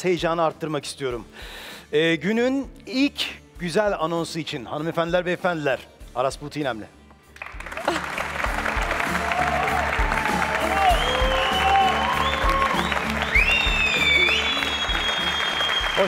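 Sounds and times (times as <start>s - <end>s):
upbeat music: 2.2s - 16.0s
audience applauding: 7.4s - 16.0s.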